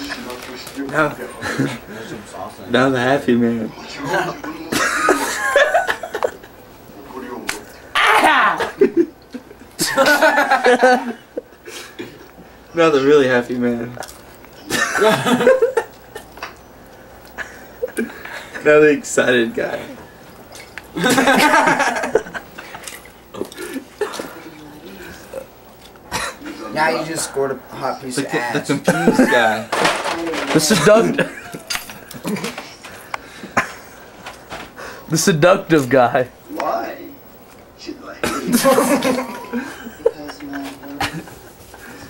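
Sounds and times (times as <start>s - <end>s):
man laughing: 4.7s - 6.4s, 9.8s - 11.2s, 14.7s - 16.3s, 21.0s - 22.5s, 28.6s - 29.6s, 30.7s - 32.5s, 38.2s - 41.3s.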